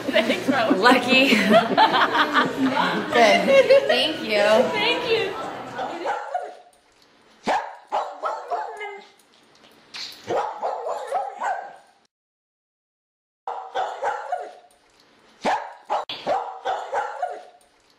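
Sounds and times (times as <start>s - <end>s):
dog barking and yipping: 5.8s - 6.7s, 7.4s - 9.1s, 10.2s - 11.9s, 13.5s - 14.7s, 15.4s - 17.6s.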